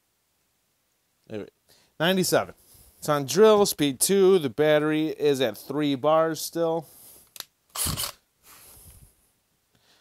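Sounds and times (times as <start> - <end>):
drill click: 7.4 - 8.2.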